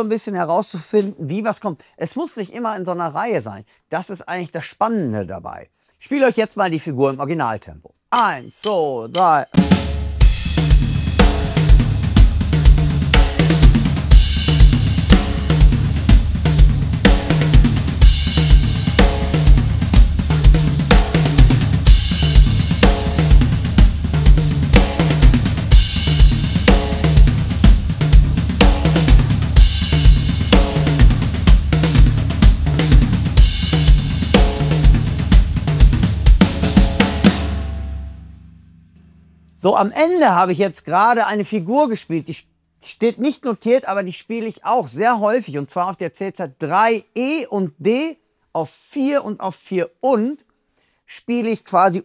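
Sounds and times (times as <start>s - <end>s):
drum kit groove: 8.1s - 40.2s
cymbal accents: 8.2s - 35.3s.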